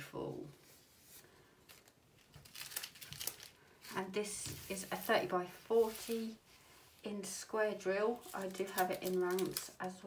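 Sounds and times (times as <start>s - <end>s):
plastic film crinkling: 1.1s - 6.4s, 7.8s - 10.0s.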